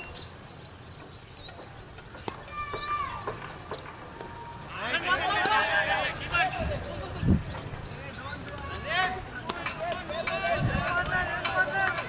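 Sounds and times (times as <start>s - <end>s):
small birds chirping: 0.0s - 12.0s
players shouting: 4.2s - 7.2s, 8.4s - 12.0s.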